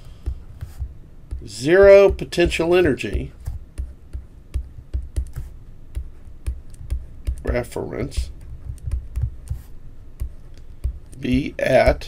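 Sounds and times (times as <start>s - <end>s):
stylus tapping on tablet: 0.1s - 12.0s.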